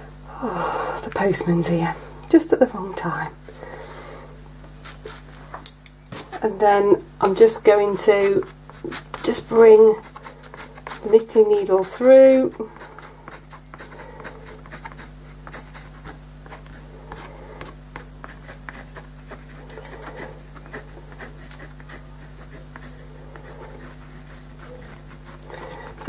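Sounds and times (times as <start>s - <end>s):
low electrical hum: 0.0s - 26.0s
needle tip scratching on paper: 4.8s - 5.3s, 8.1s - 25.7s.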